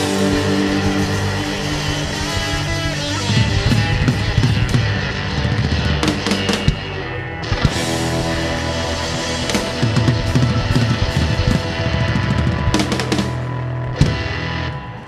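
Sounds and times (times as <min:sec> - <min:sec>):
drum kit with cymbals: 0:00.0 - 0:14.7
acoustic guitar: 0:00.0 - 0:15.0.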